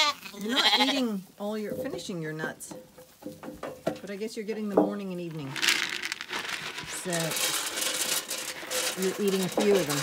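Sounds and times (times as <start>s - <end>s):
lambs feeding at metal trough: 0.0s - 10.0s
plastic bucket being handled: 2.8s - 10.0s
rustling in straw: 5.5s - 10.0s.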